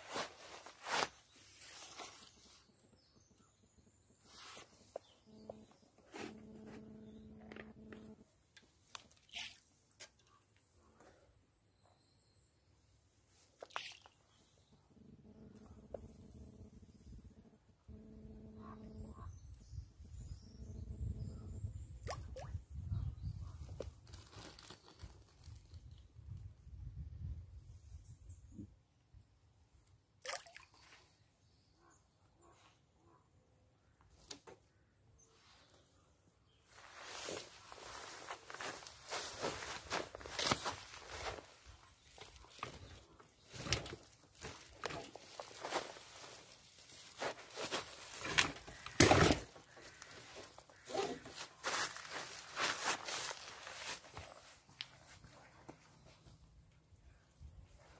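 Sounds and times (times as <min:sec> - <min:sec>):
crunching and rustling from handling: 0:23.9 - 0:25.8, 0:36.8 - 0:54.6.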